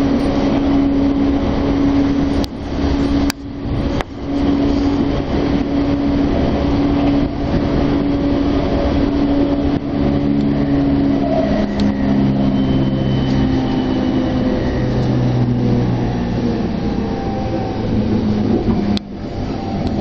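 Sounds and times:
traction motor hum: 0:00.0 - 0:20.0
train wheels on rail: 0:00.0 - 0:20.0.

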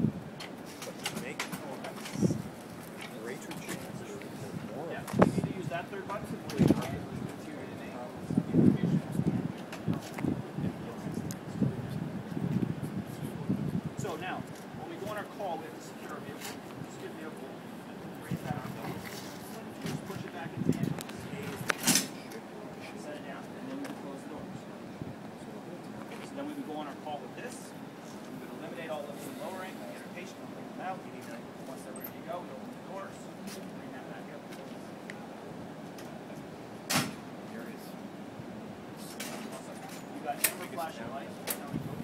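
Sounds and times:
steady background noise: 0:00.0 - 0:42.0
soft rustling clatter: 0:00.4 - 0:05.4
faint background voices: 0:00.4 - 0:42.0.

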